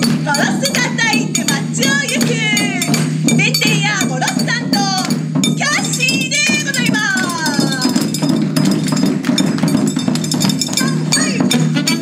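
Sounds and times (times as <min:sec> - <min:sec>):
deep bass drum: 0:00.0 - 0:11.9
small drum rapid rhythm: 0:00.0 - 0:12.0.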